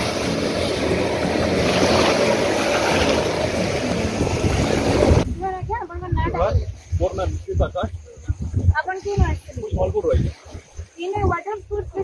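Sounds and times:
jet ski engine running: 0:00.0 - 0:05.3
rushing water and spray: 0:00.0 - 0:12.0.

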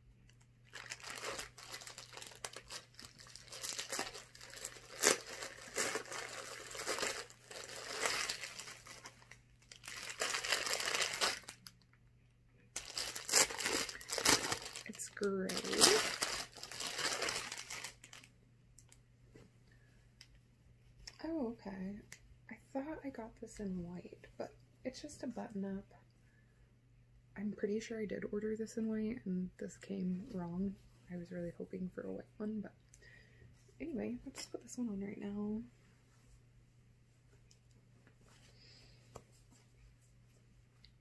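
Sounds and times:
plastic packaging crinkling: 0:00.3 - 0:11.8, 0:12.8 - 0:18.3.

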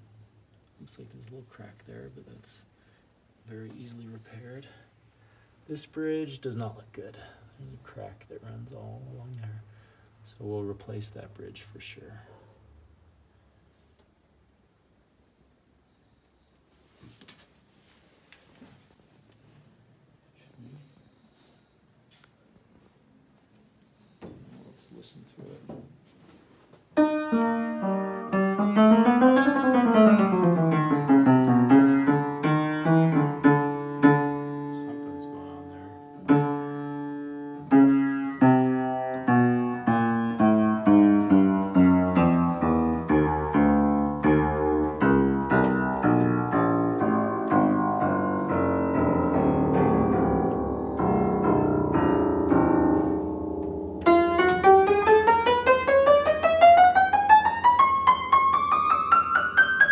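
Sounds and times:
out-of-tune piano runs and chords: 0:27.0 - 0:59.9.

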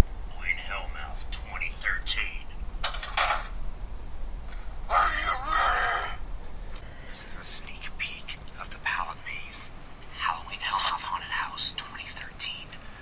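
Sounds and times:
voice through phone speaker: 0:04.9 - 0:06.2.

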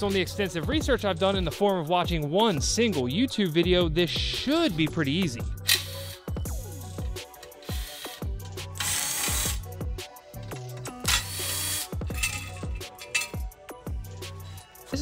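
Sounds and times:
background music: 0:00.0 - 0:15.0
impact driver spinning bolts: 0:10.5 - 0:13.4.

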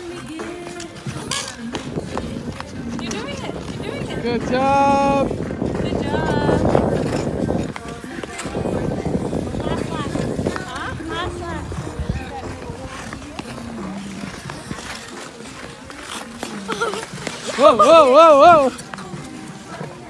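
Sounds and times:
rough background noise: 0:00.0 - 0:20.0.

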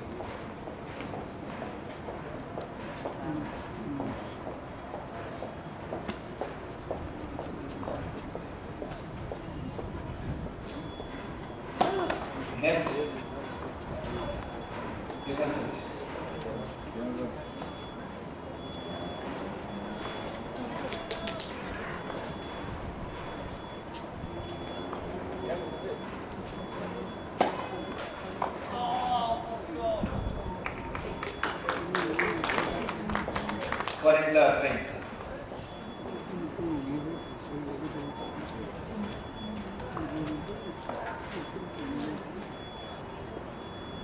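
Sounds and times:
murmur of distant voices: 0:00.0 - 0:44.0
outdoor ambience: 0:00.0 - 0:44.0
people talking indistinctly: 0:07.0 - 0:44.0.

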